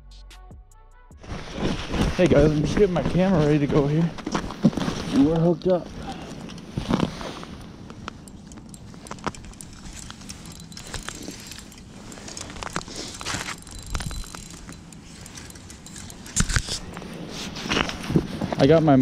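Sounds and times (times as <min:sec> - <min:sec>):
handling knocks and rustling: 0:01.2 - 0:19.0.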